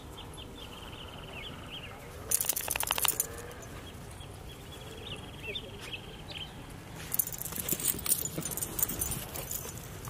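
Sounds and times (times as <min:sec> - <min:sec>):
dog tags jingling: 0:02.3 - 0:03.7, 0:07.1 - 0:10.0.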